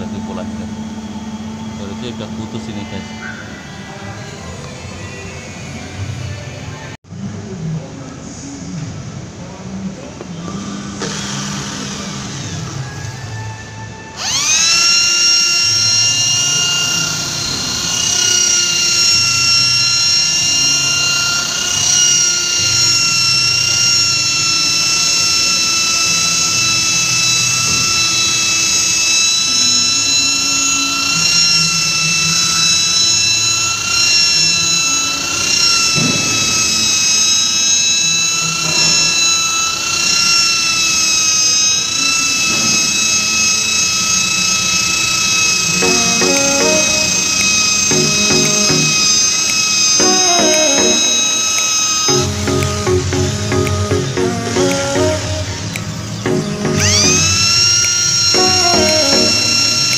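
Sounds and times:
electric polisher motor whine: 0.0s - 6.4s, 10.6s - 59.9s.

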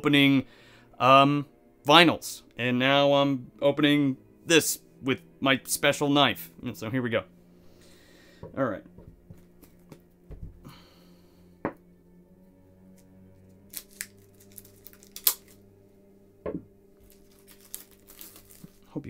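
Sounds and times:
plastic wrap cracking: 13.6s - 15.6s, 17.0s - 19.0s
plastic wrap crinkling and tearing: 13.6s - 15.6s, 17.0s - 19.0s.

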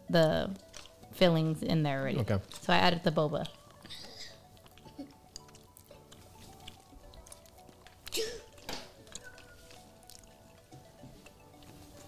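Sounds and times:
quiet background music: 0.0s - 12.0s
wet chewing clicks: 0.6s - 1.1s, 3.4s - 10.7s.

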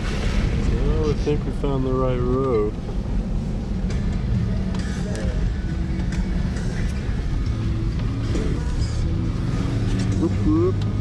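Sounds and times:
car engine running: 0.0s - 11.0s
tyre and road rumble: 0.0s - 11.0s.

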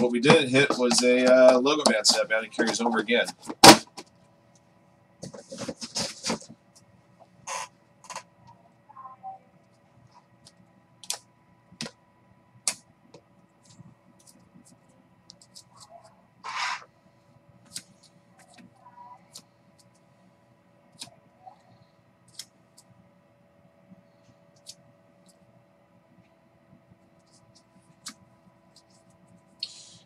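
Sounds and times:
plastic scraping on table: 16.4s - 16.9s.

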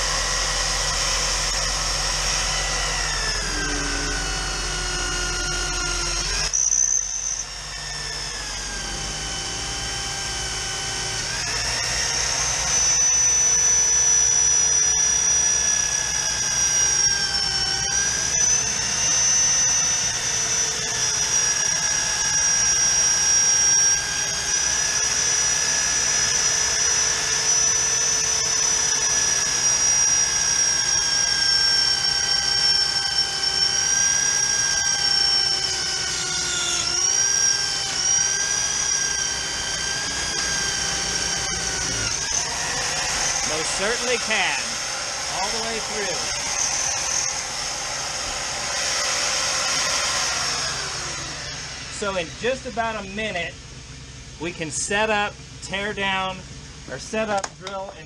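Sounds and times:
electric drill cutting steel: 0.0s - 53.4s.

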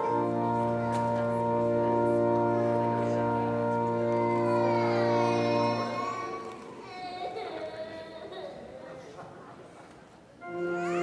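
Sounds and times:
organ music: 0.0s - 6.6s, 10.4s - 11.0s.

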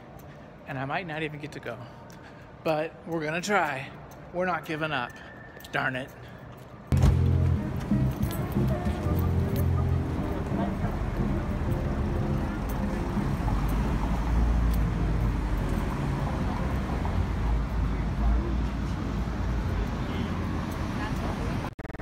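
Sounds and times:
road traffic rumble: 6.5s - 21.7s.

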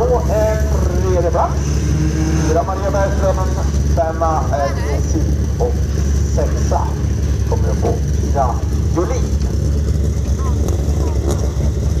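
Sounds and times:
race car engines rumbling: 0.0s - 12.0s
faint voices: 2.5s - 12.0s.

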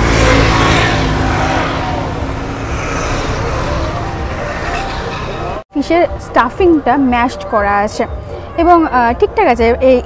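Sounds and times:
vehicle engine passing by: 0.0s - 5.6s.

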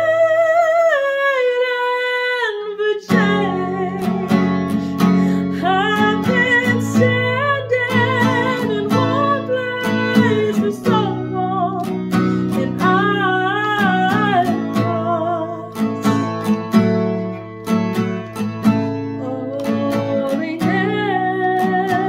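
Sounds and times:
woman singing: 0.0s - 16.8s, 18.9s - 22.0s
strummed acoustic guitar: 3.0s - 22.0s.

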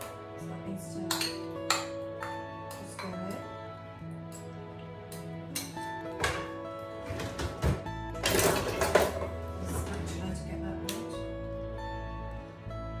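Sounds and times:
background music with plucked guitar: 0.0s - 13.0s.

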